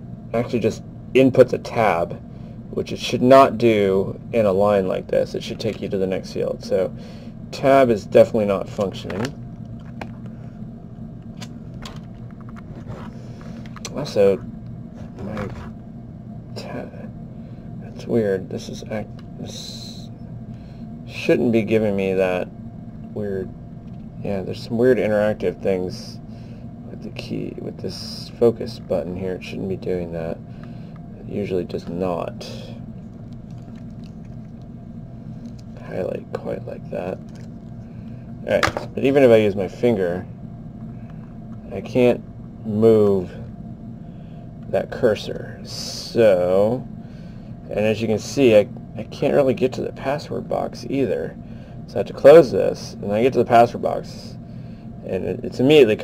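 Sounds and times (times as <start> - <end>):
low background hum: 0.0 - 56.0
man talking: 0.3 - 9.4, 13.8 - 14.5, 15.2 - 15.6, 16.6 - 17.2, 17.8 - 20.1, 21.1 - 22.5, 23.2 - 23.5, 24.2 - 26.2, 26.9 - 30.4, 31.2 - 32.8, 35.8 - 37.2, 38.4 - 40.3, 41.6 - 43.5, 44.7 - 46.9, 47.7 - 54.4, 55.0 - 56.0.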